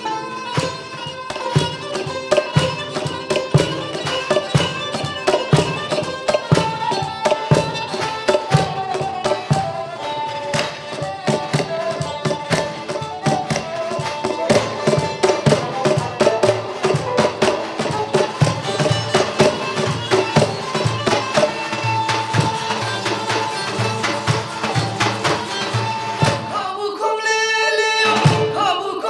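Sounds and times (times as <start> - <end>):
santur: 0.0 - 26.6
cajon beat: 0.0 - 26.8, 28.0 - 29.0
long-necked lute: 0.0 - 29.0.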